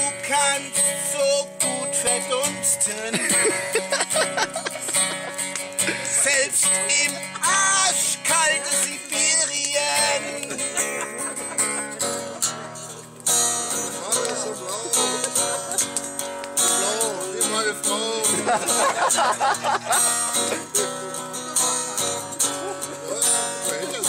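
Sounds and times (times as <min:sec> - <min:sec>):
acoustic guitar strumming: 0:00.0 - 0:24.0
voices singing along: 0:00.0 - 0:24.0.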